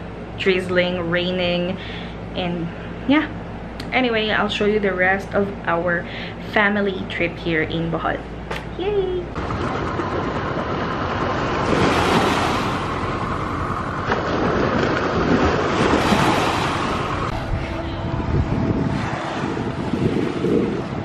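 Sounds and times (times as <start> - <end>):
wind buffeting microphone: 9.3 - 21.0
small waves on sandy shore: 9.4 - 17.9.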